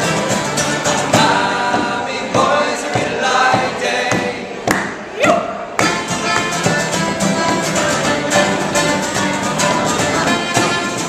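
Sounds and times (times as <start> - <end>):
mandolin strumming: 0.0 - 4.6, 5.8 - 11.0
acoustic guitars strumming: 0.0 - 11.0
voices singing together: 0.0 - 11.0.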